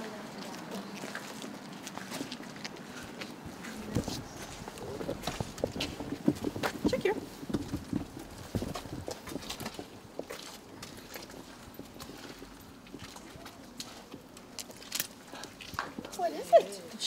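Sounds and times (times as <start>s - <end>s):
dog paws clicking on pavement: 0.0s - 17.0s.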